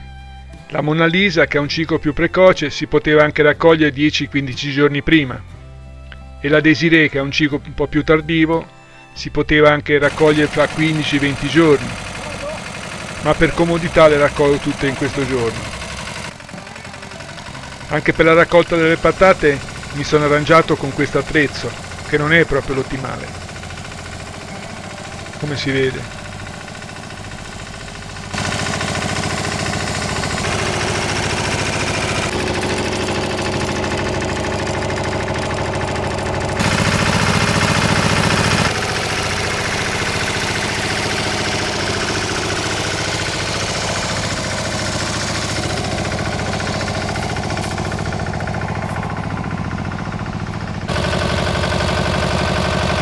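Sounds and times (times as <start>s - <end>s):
walking tractor engine running: 0.0s - 53.0s.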